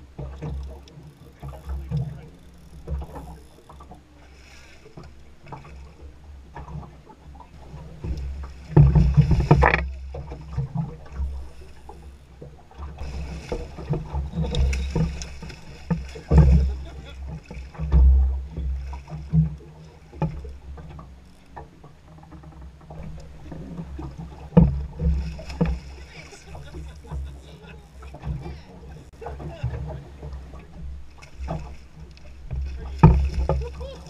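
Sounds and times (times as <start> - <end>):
knocks and clicks from boat: 0.0 - 34.0.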